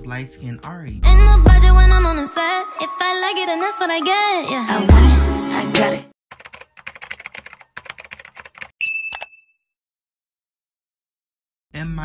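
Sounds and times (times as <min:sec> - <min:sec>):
rapid keyboard typing: 0:06.3 - 0:08.8
bright bell ding: 0:08.8 - 0:09.7.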